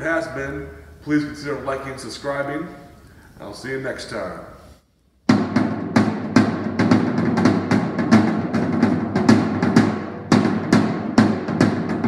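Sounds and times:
tom drum strikes: 5.3s - 12.0s.

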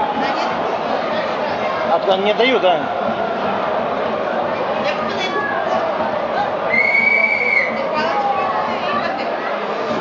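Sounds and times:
stadium crowd noise: 0.0s - 10.0s
high whistle note: 6.7s - 7.8s.

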